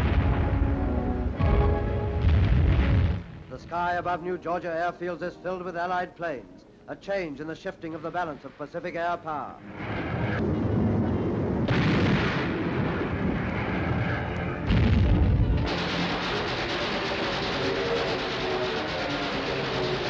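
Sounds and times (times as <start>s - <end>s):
heavy boom: 0.0s - 3.6s, 9.8s - 20.0s
explosions: 0.0s - 3.7s, 9.7s - 20.0s
orchestral music: 0.0s - 5.7s, 13.2s - 20.0s
gunfire: 2.2s - 3.4s, 11.7s - 13.7s, 14.7s - 20.0s.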